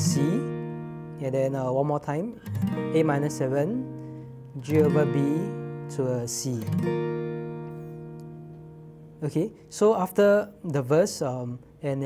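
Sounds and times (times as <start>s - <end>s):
acoustic guitar chord ringing: 0.0s - 10.6s.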